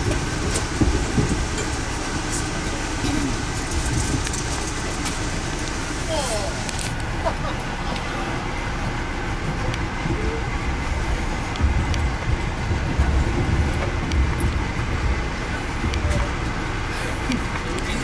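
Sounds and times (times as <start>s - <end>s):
train rumbling from inside coach: 0.0s - 18.0s.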